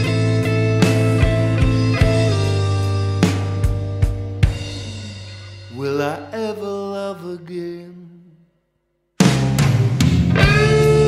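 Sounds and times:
person singing blues note: 0:04.5 - 0:08.5.

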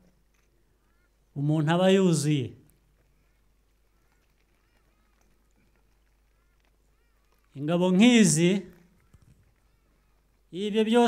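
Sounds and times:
faint bird calls: 0:00.0 - 0:01.5, 0:02.6 - 0:11.0.

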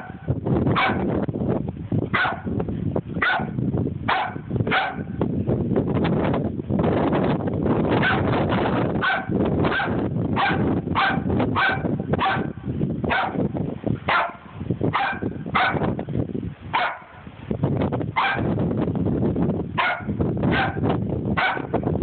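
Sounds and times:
dog barking: 0:00.0 - 0:01.1, 0:02.1 - 0:02.5, 0:03.2 - 0:05.2, 0:08.0 - 0:08.3, 0:09.0 - 0:13.4, 0:14.1 - 0:15.8, 0:16.7 - 0:17.2, 0:18.2 - 0:18.5, 0:19.8 - 0:20.8, 0:21.4 - 0:21.7
steady low rumble: 0:00.0 - 0:22.0.

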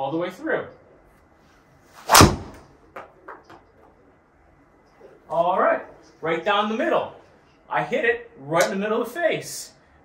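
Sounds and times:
golf club striking ball: 0:02.0 - 0:03.1.

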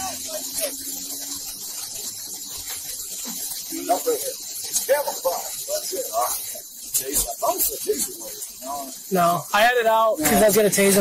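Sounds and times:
people talking indistinctly: 0:00.0 - 0:01.2, 0:02.2 - 0:11.0
steady high hiss: 0:00.0 - 0:11.0.

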